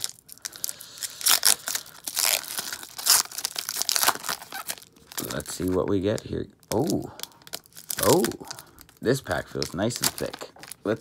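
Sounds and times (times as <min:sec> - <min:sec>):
foil wrapper tearing and crinkling: 0:00.0 - 0:11.0.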